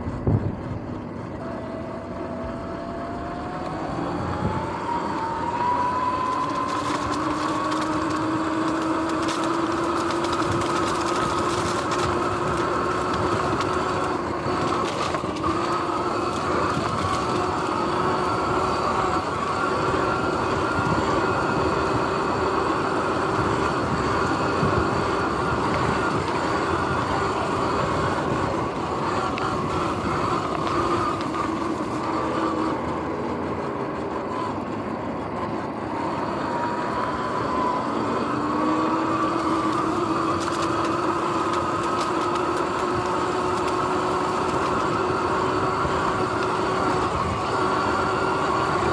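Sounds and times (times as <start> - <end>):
electric motor whine: 0.0 - 48.9
wind and tyre noise: 0.0 - 48.9.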